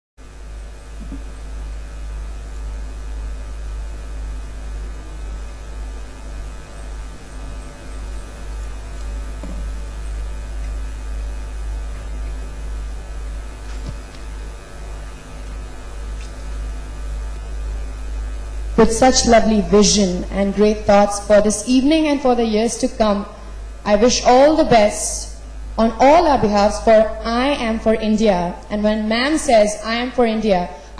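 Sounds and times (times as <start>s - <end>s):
electrical mains hum: 0.2s - 30.9s
faint buzz: 0.2s - 30.9s.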